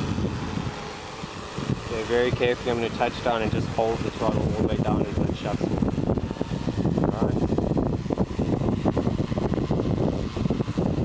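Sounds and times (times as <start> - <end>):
drone rotors whirring: 0.0 - 11.0
wind buffeting microphone: 0.0 - 11.0.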